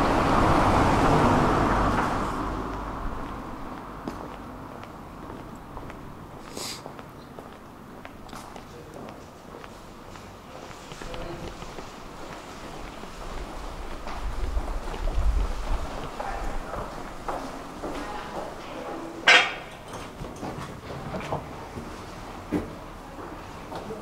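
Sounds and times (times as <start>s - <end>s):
low rumble: 0.0s - 4.0s, 13.2s - 17.3s
footsteps on paving: 2.7s - 18.6s.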